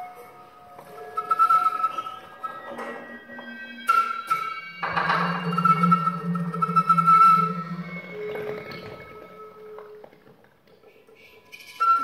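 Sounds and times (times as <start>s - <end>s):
flute high note: 0.0s - 10.0s, 11.4s - 12.0s.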